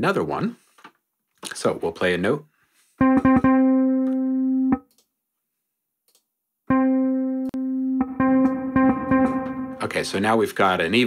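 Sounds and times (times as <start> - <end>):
sampled bass notes: 3.0 - 4.9, 6.7 - 10.5.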